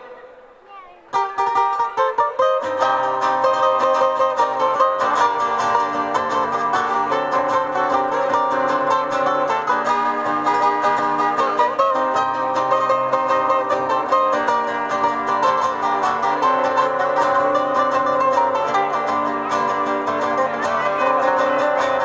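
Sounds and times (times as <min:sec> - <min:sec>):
acoustic guitars strummed and picked: 0:00.0 - 0:22.0.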